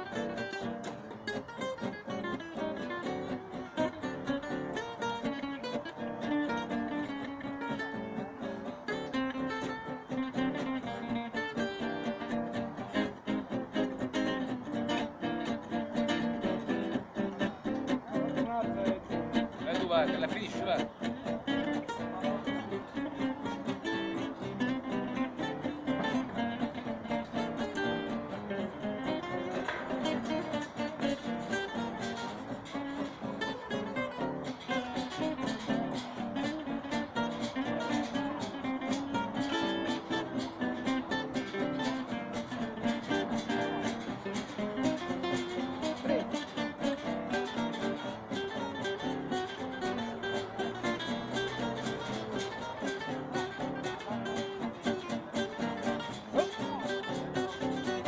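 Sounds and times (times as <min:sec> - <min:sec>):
acoustic guitars playing: 0:00.0 - 0:58.0.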